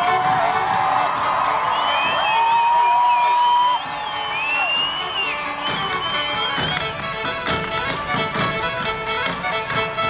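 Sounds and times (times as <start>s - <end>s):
audience cheering: 0.0s - 6.8s
fiddle music: 0.0s - 10.0s
whoops and whistles: 1.7s - 6.8s.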